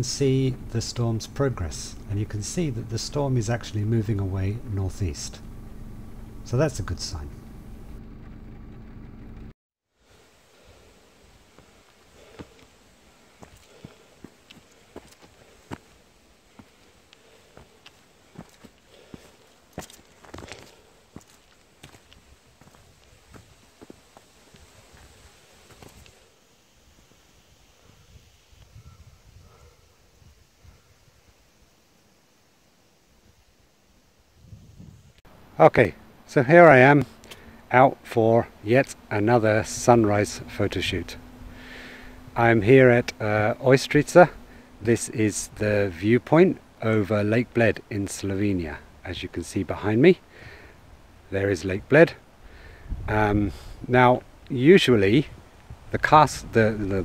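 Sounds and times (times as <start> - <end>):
steady hum: 0.0 - 57.0
footsteps crunching on gravel: 11.6 - 12.7, 13.3 - 26.1.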